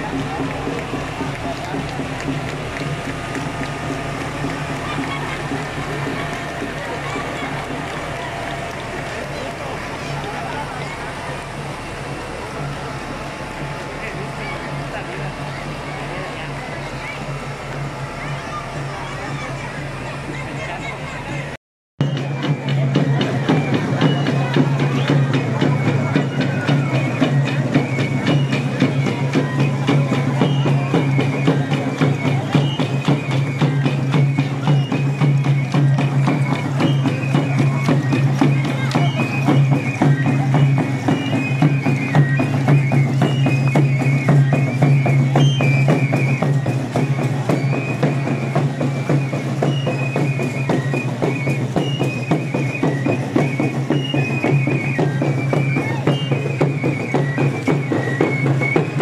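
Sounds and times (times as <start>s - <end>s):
fast drumming: 0.0s - 59.0s
parade street noise: 0.0s - 59.0s
shrill pipe melody: 0.0s - 59.0s.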